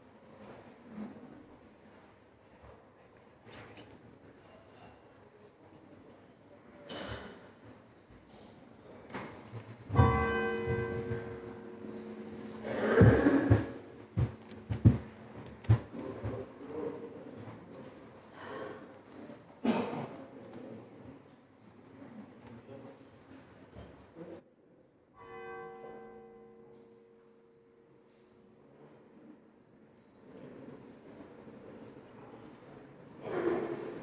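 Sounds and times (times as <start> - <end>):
church bell ringing: 9.9 - 16.3, 25.2 - 29.2
bell ringing: 10.0 - 15.0.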